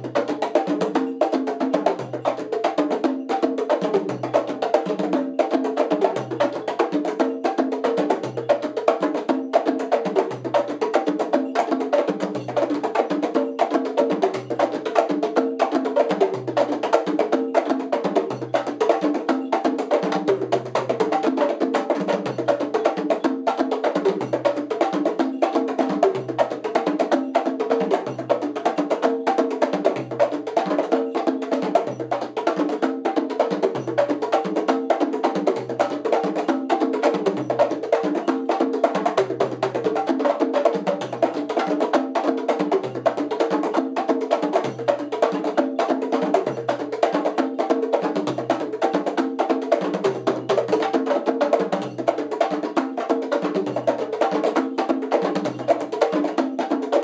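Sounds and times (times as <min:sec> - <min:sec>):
conga drums playing fast rhythm: 0:00.0 - 0:57.0.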